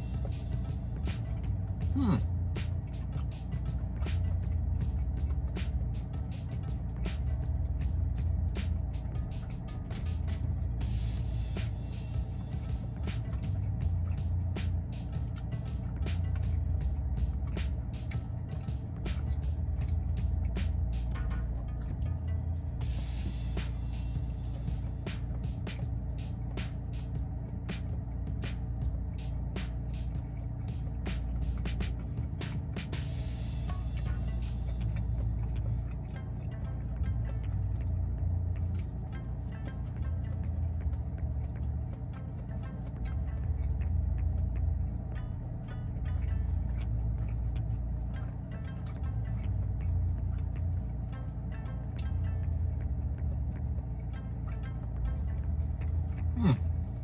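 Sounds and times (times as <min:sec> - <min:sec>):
background music with bass line: 0:00.0 - 0:57.0
close-up chewing clicks and smacks: 0:00.0 - 0:57.0.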